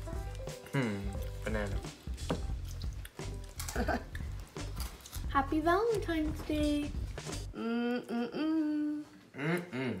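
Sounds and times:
person humming with enjoyment: 0:00.6 - 0:01.2, 0:07.5 - 0:10.0.

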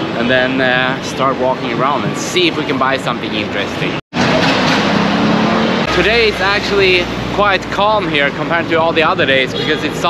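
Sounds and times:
city street traffic: 0:00.0 - 0:10.0.

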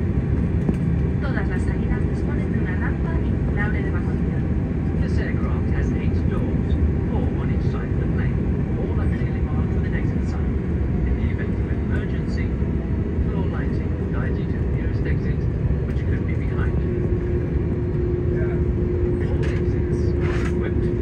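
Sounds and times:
low rumble of aircraft engines: 0:00.0 - 0:21.0.

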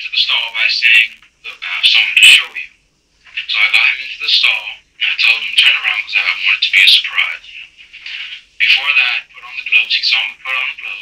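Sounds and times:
tinny recorded voice speaking: 0:00.0 - 0:11.0.

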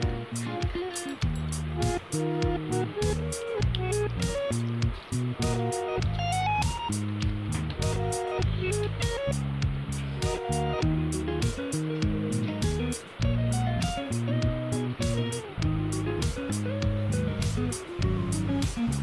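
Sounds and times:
guitar music: 0:00.0 - 0:19.0
quick percussion beat: 0:00.0 - 0:19.0.

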